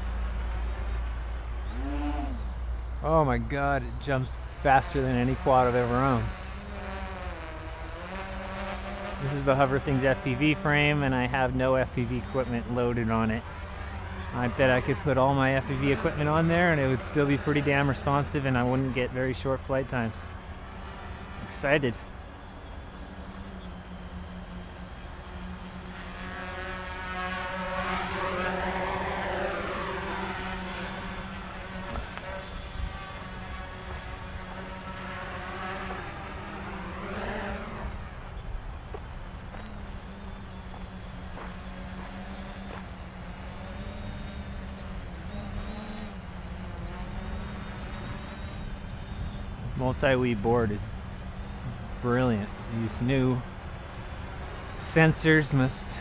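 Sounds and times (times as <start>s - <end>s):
quadcopter propellers buzzing: 0.0s - 56.0s.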